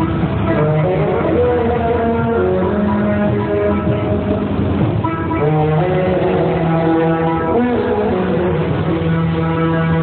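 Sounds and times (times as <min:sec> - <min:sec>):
loud music through horn loudspeakers: 0:00.0 - 0:10.0.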